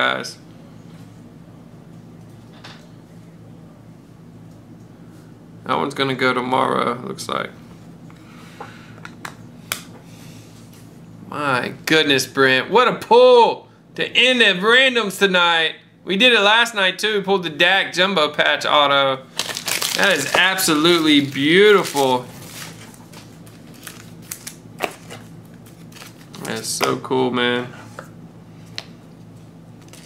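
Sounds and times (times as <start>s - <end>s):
cards and packaging rustling: 19.3s - 27.0s.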